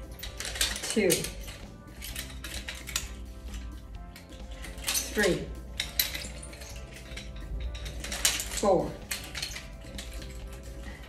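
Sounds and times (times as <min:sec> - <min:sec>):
background music: 0:00.0 - 0:11.0
nunchaku chain clinking: 0:00.0 - 0:11.0.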